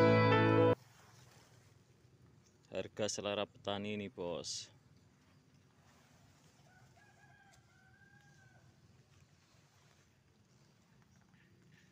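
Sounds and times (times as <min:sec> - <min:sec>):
faint rooster crowing: 0:06.4 - 0:09.2.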